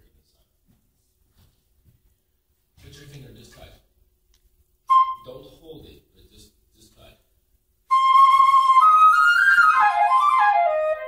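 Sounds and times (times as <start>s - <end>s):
flute note: 4.9s - 5.3s, 7.9s - 11.0s.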